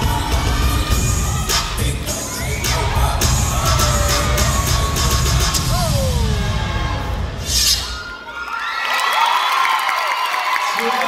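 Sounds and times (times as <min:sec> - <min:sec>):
dance music: 0:00.0 - 0:08.2
audience cheering and screaming: 0:00.4 - 0:11.0.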